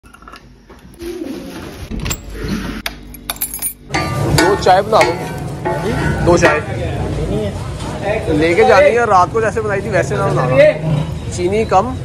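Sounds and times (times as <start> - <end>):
keys clinking: 3.1 - 3.9.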